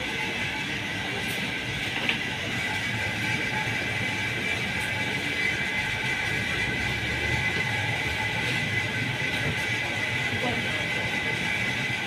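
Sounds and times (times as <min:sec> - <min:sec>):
machine hum with high whine: 0:00.0 - 0:12.0.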